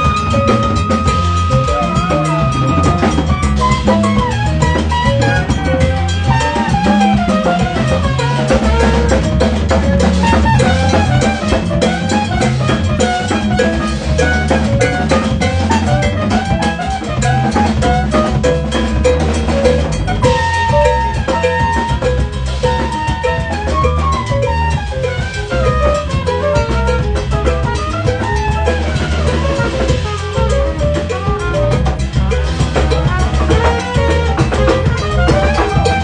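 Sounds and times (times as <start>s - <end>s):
drum kit: 0.0s - 36.0s
electric bass: 0.0s - 36.0s
hand percussion: 0.0s - 36.0s
trumpet solo: 0.0s - 36.0s.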